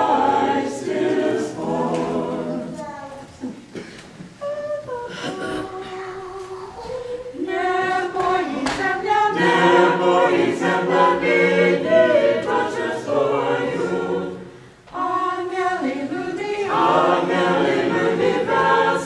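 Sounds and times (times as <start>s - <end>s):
choir singing unaccompanied: 0.0s - 2.9s, 4.4s - 19.0s.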